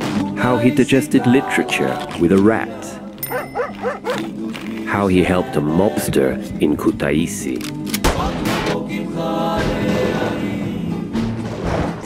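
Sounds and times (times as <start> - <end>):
background music: 0.0 - 12.0
yelping animal calls: 3.2 - 4.3.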